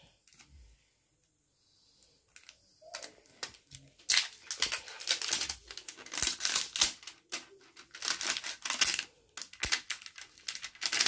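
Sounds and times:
plastic wrapping crinkling: 2.3s - 11.0s.

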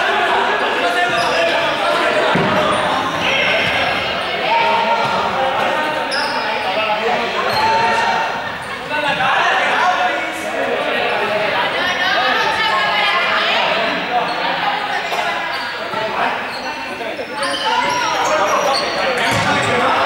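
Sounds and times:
students shouting and chattering: 0.0s - 20.0s
balls bouncing on gym floor: 2.2s - 4.1s, 19.2s - 19.8s.

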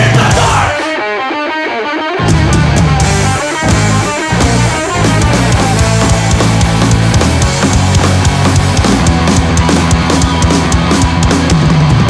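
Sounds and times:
bass guitar: 0.0s - 12.0s
electric guitar riff: 0.0s - 12.0s
drums with cymbals: 2.4s - 12.0s.

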